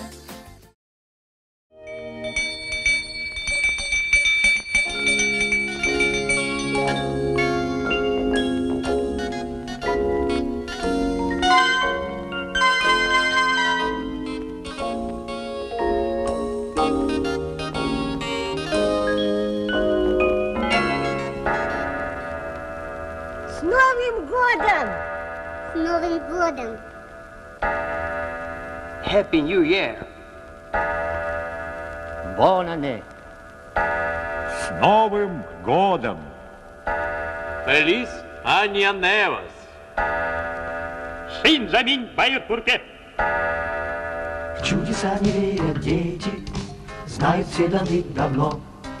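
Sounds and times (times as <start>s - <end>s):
bell-like chime ringing: 1.8s - 9.1s
bell-led soundtrack music: 1.8s - 23.6s.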